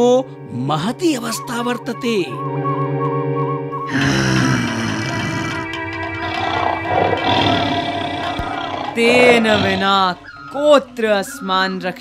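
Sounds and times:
background music: 0.0s - 12.0s
lion roaring: 3.9s - 10.4s.

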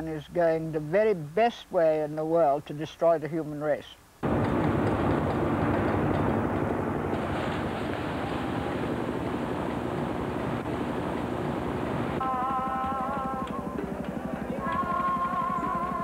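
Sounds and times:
helicopters flying overhead: 4.3s - 16.0s.

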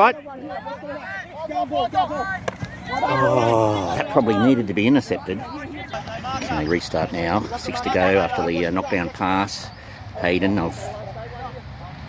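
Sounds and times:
players calling out: 0.0s - 11.9s.

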